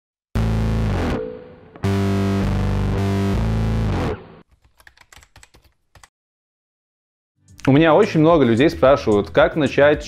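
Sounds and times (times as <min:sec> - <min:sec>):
distorted guitar music: 0:00.4 - 0:04.4
computer keyboard typing: 0:04.5 - 0:06.1.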